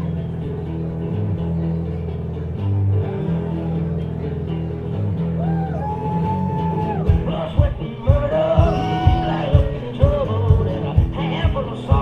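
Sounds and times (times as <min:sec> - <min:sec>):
guitar playing low riff: 0:00.0 - 0:12.0.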